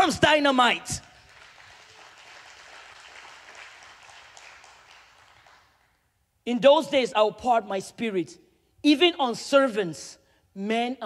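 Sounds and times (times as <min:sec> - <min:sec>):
faint applause: 0:01.1 - 0:06.0.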